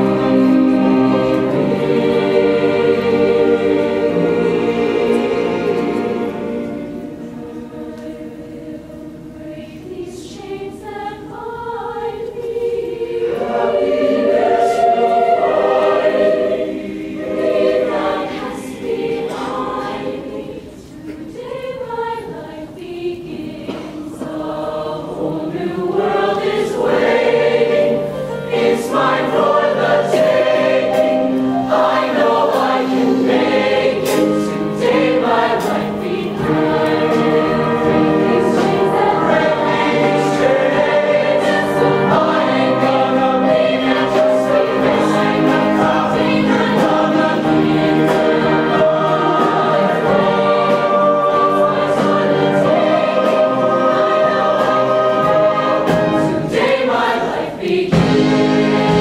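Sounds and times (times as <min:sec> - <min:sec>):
choir singing in harmony: 0:00.0 - 0:59.0.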